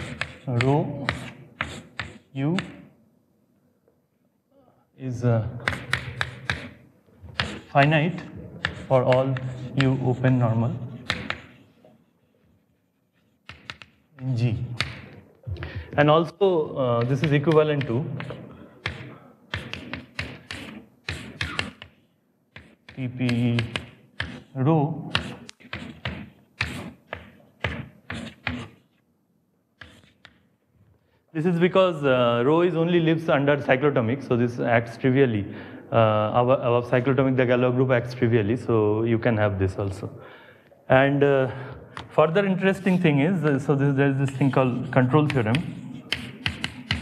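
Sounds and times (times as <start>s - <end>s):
chalk tapping and scraping: 0.0s - 2.9s, 5.6s - 16.1s, 16.8s - 29.0s, 29.8s - 30.5s, 41.9s - 47.0s
man speaking: 0.4s - 1.3s, 7.6s - 11.1s, 14.2s - 14.8s, 23.0s - 23.8s, 40.8s - 46.2s.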